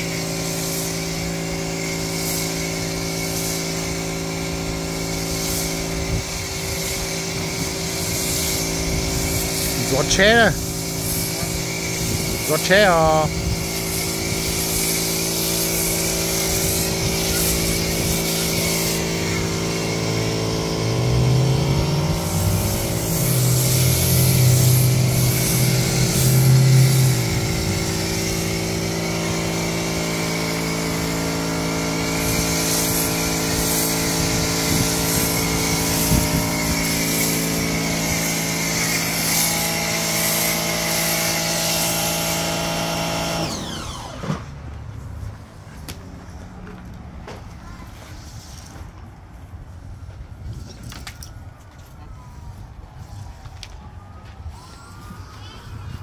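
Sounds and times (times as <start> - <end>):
foam spray hissing: 0.0 - 43.2
pressure washer motor hum: 0.0 - 44.4.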